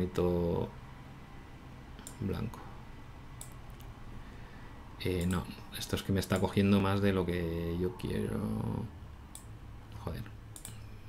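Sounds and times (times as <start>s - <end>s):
computer mouse clicks: 2.0s - 2.2s, 3.4s - 3.9s, 5.2s - 5.4s, 10.5s - 10.9s.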